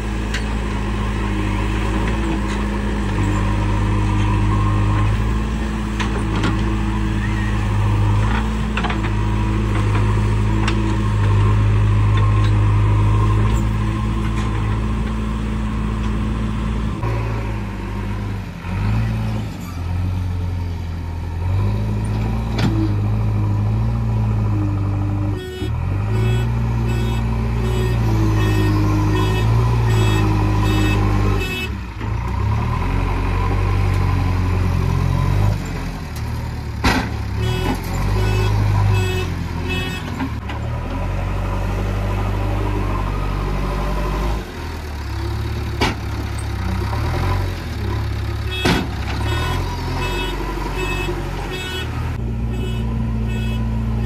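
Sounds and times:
backhoe diesel engine revving: 0.0s - 54.0s.

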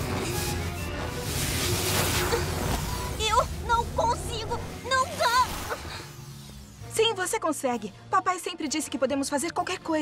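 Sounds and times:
electricity crackling and buzzing: 0.0s - 7.7s
music: 0.0s - 10.0s.

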